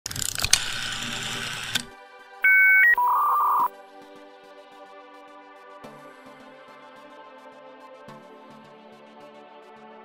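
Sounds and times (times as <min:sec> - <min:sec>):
rotary dial whirring back: 0:00.1 - 0:01.9.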